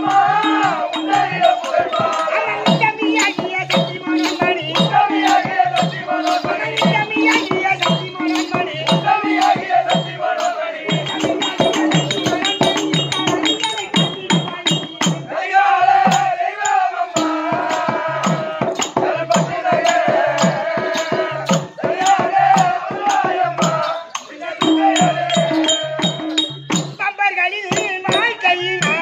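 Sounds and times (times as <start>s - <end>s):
hand drums beating: 0.0s - 29.0s.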